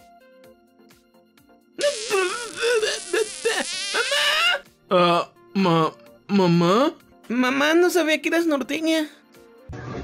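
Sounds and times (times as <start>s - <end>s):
warbling comic kiss sound: 1.8s - 4.4s.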